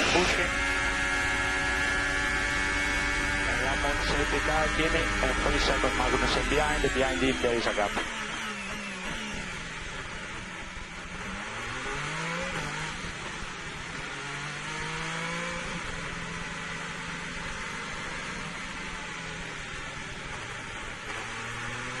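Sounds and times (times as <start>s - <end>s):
racing car engine: 0.0s - 22.0s.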